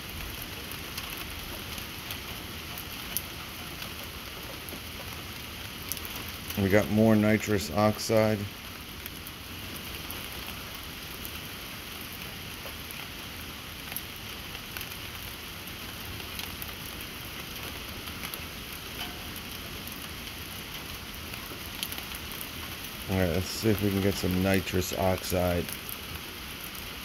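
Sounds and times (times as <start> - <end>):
steady background hiss: 6.4 - 8.9, 17.6 - 27.0.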